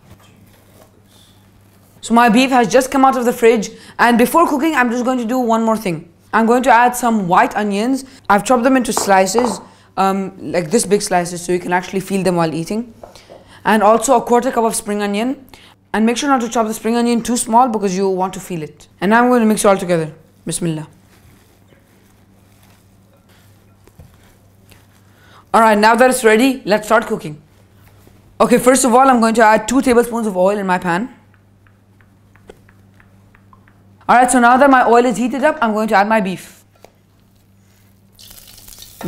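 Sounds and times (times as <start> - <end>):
steady low hum: 0.0 - 39.0
wet rustling of hand mixing: 19.7 - 25.4, 36.8 - 39.0
hot oil sizzling in a wok: 38.2 - 39.0.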